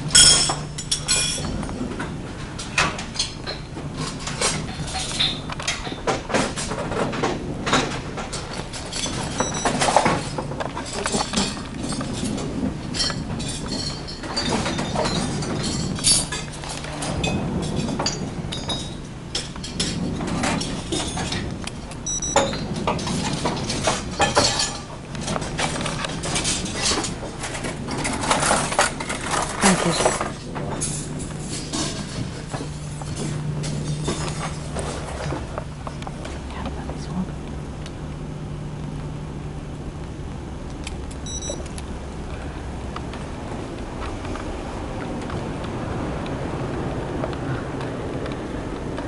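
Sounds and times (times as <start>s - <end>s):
steady low hum: 0.0s - 49.0s
cutlery and dishes clinking: 0.1s - 1.6s
indistinct voices: 29.3s - 30.6s.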